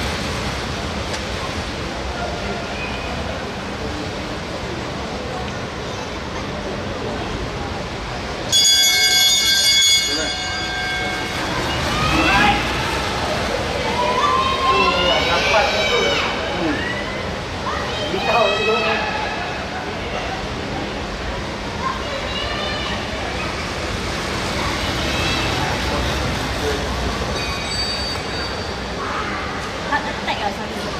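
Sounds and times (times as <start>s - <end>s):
distant indistinct voices: 1.2s - 30.9s
bell ringing loudly: 8.5s - 12.2s, 27.4s - 28.8s.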